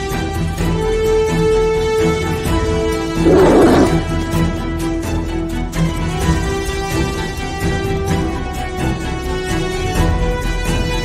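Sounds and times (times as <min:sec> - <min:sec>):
lion roar sound effect: 0:03.2 - 0:04.1.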